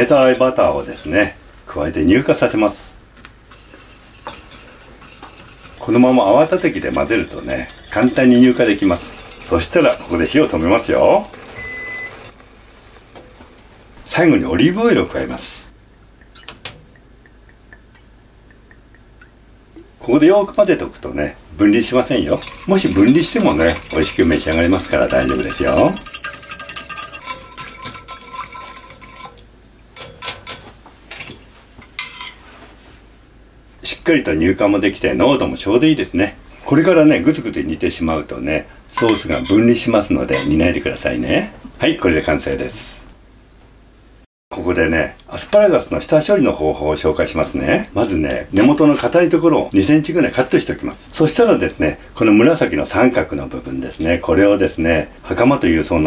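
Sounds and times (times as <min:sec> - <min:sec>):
whisk stirring in saucepan: 0:00.0 - 0:01.4, 0:03.5 - 0:12.4, 0:21.6 - 0:29.4, 0:39.0 - 0:41.0
whisk wires clinking on pan: 0:00.0 - 0:01.4, 0:03.5 - 0:12.3, 0:22.0 - 0:32.4, 0:39.0 - 0:40.6.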